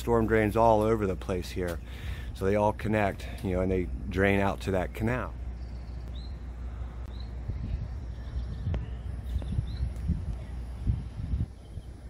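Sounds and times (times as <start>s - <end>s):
steady low rumble: 0.0s - 12.0s
high bird chirps: 5.6s - 10.1s.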